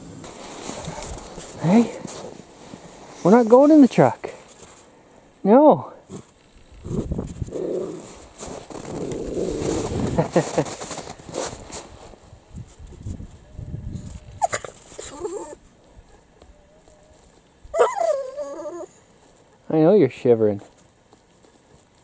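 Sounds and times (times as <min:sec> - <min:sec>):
dogs growling: 0:06.9 - 0:08.2
dog whining: 0:14.4 - 0:15.6, 0:16.5 - 0:19.0.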